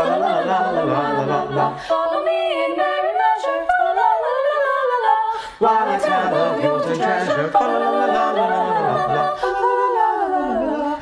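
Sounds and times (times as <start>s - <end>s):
a cappella vocal ensemble singing: 0.0s - 11.0s.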